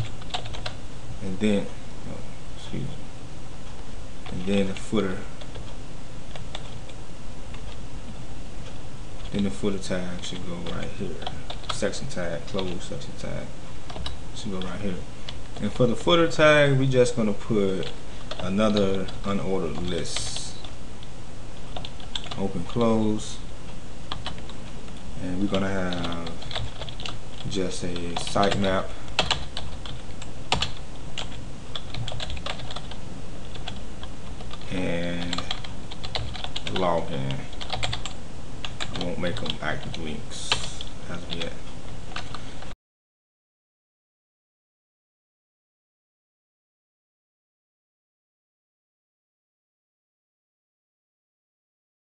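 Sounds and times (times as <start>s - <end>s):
low background noise: 0.0s - 42.8s
steady background hiss: 0.0s - 42.8s.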